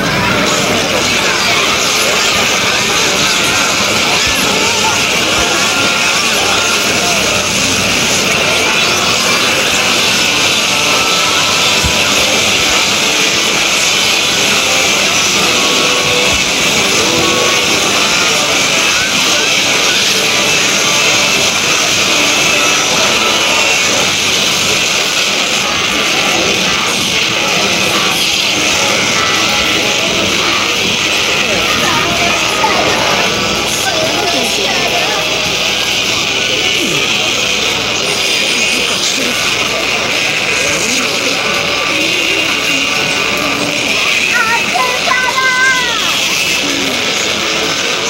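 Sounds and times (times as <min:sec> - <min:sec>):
overlapping soundtracks din: 0:00.0 - 0:48.0.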